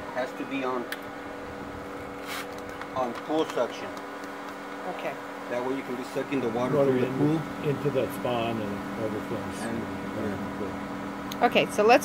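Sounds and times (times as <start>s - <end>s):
pump motor humming: 0.0s - 12.0s
brief hiss: 2.2s - 2.6s.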